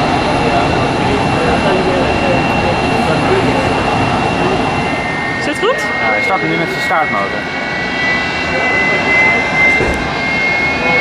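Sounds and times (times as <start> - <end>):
jet engine rumble and whine: 0.0 - 11.0.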